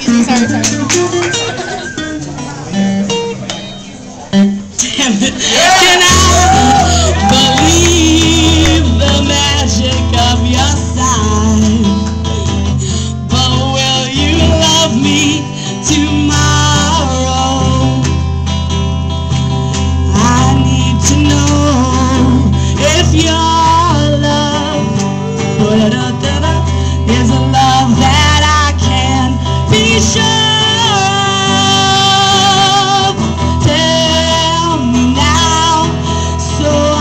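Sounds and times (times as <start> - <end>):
guitar chords: 0.0 - 37.0
woman singing: 4.8 - 12.3, 13.0 - 18.2, 20.0 - 37.0.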